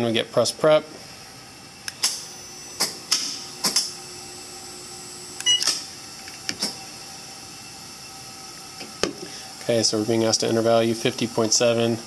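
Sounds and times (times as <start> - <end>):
steady electrical whine: 0.0 - 12.0
short beep: 5.4 - 5.7.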